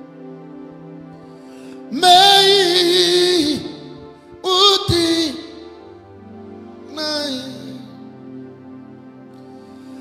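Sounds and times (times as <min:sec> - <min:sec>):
slow gospel music: 0:00.0 - 0:10.0
person singing: 0:01.7 - 0:06.0, 0:06.9 - 0:08.2.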